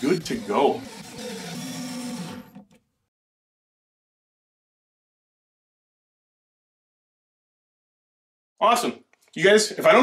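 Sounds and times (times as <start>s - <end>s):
cordless drill drilling into wood: 0.0s - 2.8s.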